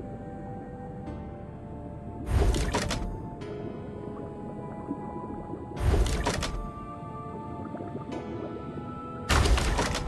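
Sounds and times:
slot game background music: 0.0s - 4.4s, 5.2s - 7.6s, 9.2s - 10.0s.

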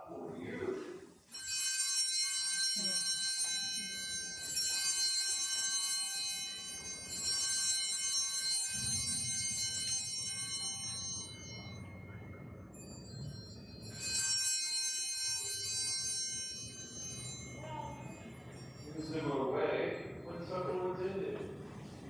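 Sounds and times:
altar bells ringing: 0.8s - 21.4s.

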